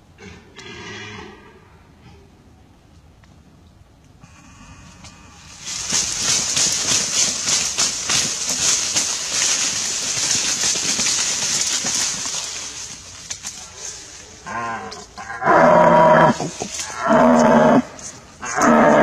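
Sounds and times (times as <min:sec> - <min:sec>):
leaves and brush rustling: 0:04.4 - 0:19.0.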